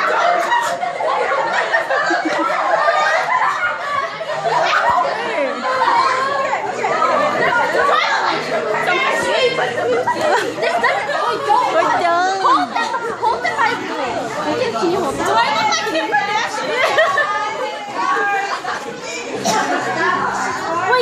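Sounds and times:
laughter: 0.0s - 6.0s, 9.5s - 11.4s, 15.6s - 17.8s
girls chattering and calling out: 0.0s - 21.0s.

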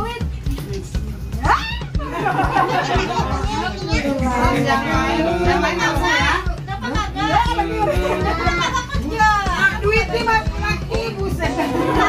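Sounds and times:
background music: 0.0s - 12.0s
children talking and calling out: 1.4s - 12.0s.

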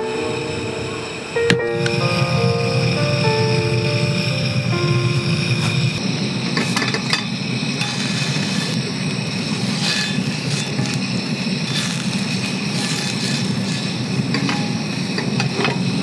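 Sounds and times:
fat sizzling in a hot pan: 0.0s - 16.0s
low roar of heat: 0.0s - 16.0s.

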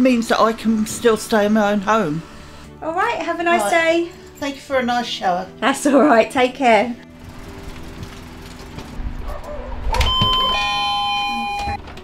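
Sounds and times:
two-note doorbell chime: 10.0s - 11.8s.

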